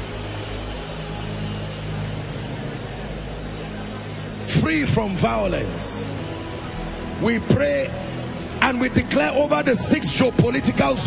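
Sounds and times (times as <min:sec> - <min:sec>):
faint hall hiss: 0:00.0 - 0:11.0
sustained keyboard pad chord: 0:00.0 - 0:11.0.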